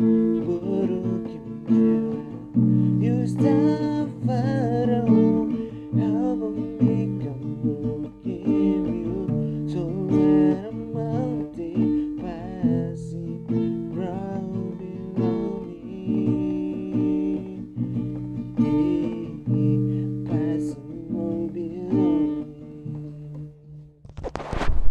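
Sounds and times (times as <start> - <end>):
man singing: 0.0 - 23.8
strummed acoustic guitar: 0.0 - 24.9.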